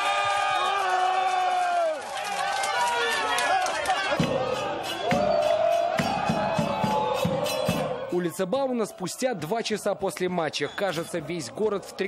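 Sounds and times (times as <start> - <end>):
crowd shouting and cheering: 0.0 - 12.0
handclaps: 1.3 - 4.4.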